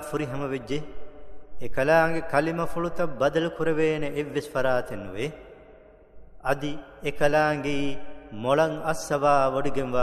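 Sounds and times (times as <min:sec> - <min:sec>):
man chanting melodic recitation: 0:06.4 - 0:10.0.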